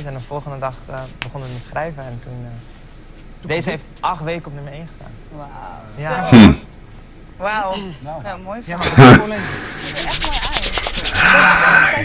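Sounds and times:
tv show talk: 0.0s - 12.0s
hands rubbing together: 9.5s - 11.7s.

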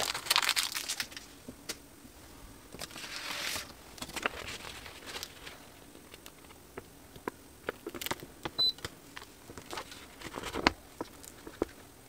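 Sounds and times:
stiff paper crackling and rustling: 0.0s - 1.3s, 2.8s - 6.6s, 9.5s - 11.9s.

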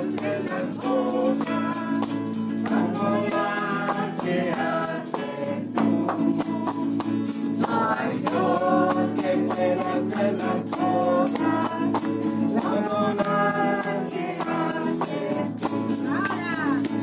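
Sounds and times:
shaker rhythm: 0.0s - 17.0s
voices singing in chorus: 0.0s - 17.0s.

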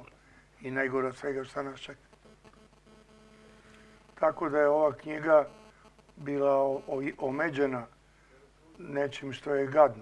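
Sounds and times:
faint electrical hum: 0.0s - 10.0s.

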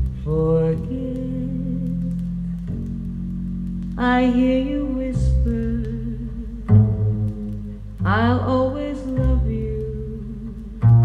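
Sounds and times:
slow vocal ballad on loudspeakers: 0.2s - 2.7s, 4.0s - 10.8s.

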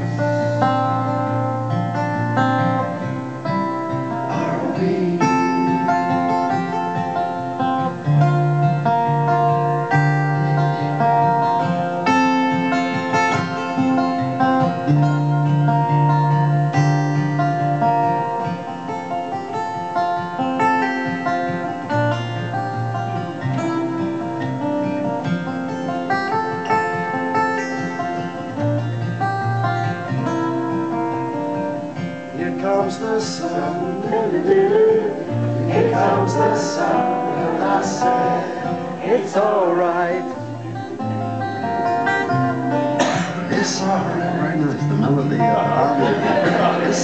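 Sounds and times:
acoustic guitar picked chords: 0.0s - 47.0s.

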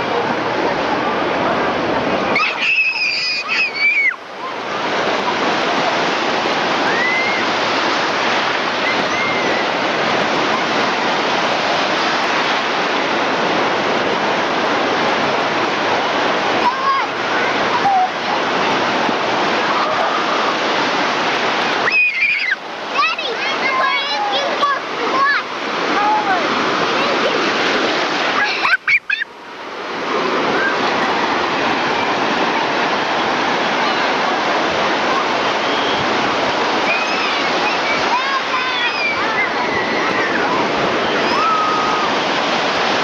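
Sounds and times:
ocean surf breaking: 0.0s - 43.0s
child shouting: 2.4s - 4.2s, 16.6s - 18.1s, 21.8s - 26.4s, 36.8s - 40.5s, 41.2s - 42.1s.

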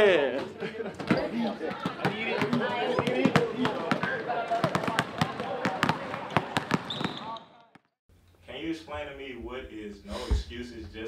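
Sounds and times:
voices chattering: 0.0s - 7.5s
basketballs bouncing on wooden floor: 1.0s - 7.2s.

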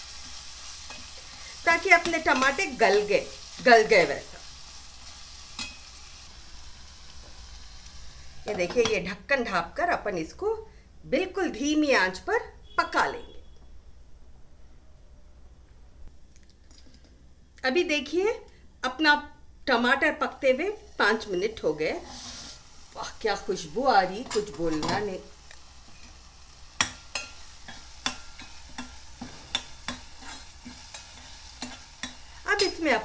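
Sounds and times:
faint sizzle: 0.0s - 13.8s, 14.4s - 33.0s
ladle scraping and tapping pot: 26.8s - 32.8s.

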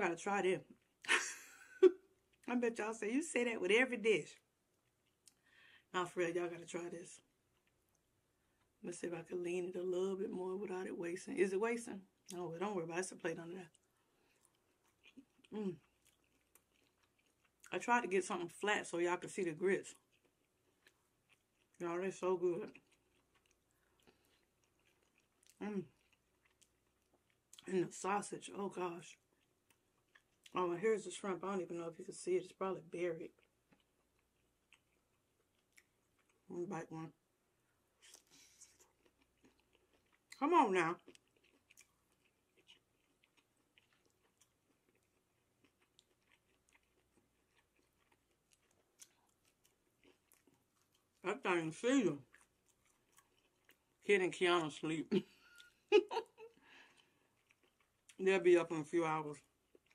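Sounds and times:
chewing and wet mouth clicks: 4.7s - 5.5s, 13.6s - 17.8s, 19.9s - 21.8s, 22.7s - 27.7s, 29.1s - 30.6s, 33.4s - 36.4s, 38.0s - 40.4s, 41.0s - 51.2s, 52.3s - 54.0s, 56.5s - 58.2s, 59.6s - 59.9s.

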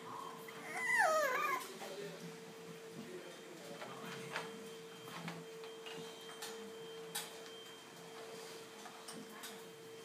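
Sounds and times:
puppy whining: 0.4s - 1.8s.

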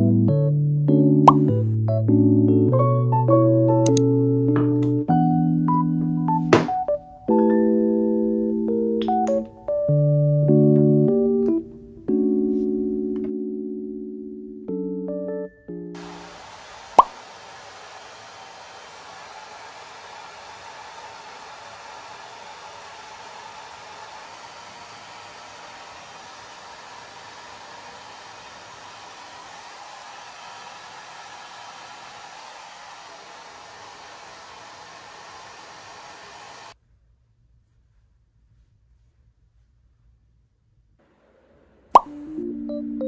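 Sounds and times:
hair dryer running: 16.0s - 36.8s.

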